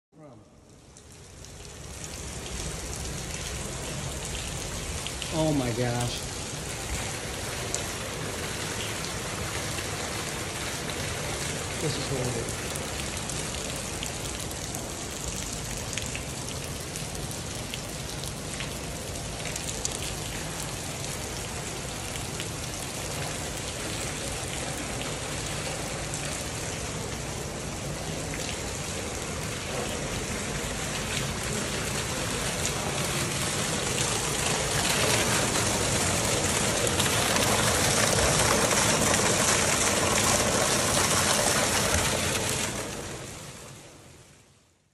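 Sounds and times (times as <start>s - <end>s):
water pouring and splashing: 0.7s - 44.1s
person's voice: 5.2s - 6.3s, 11.8s - 12.6s.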